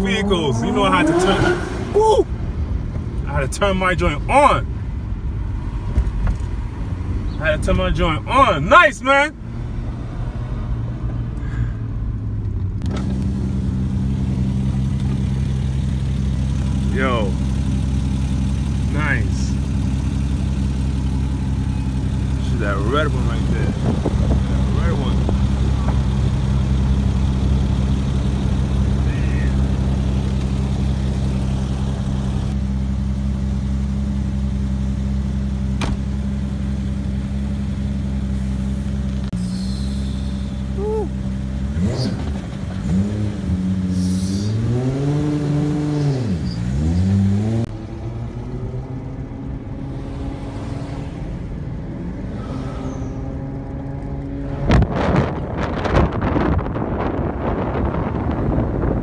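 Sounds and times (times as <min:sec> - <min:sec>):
car engine idling and revving: 0:00.0 - 0:59.0.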